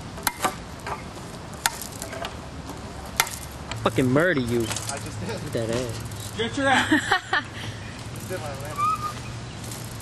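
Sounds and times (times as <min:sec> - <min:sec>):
steady outdoor hiss: 0:00.0 - 0:10.0
sharp knocks: 0:03.2 - 0:03.5.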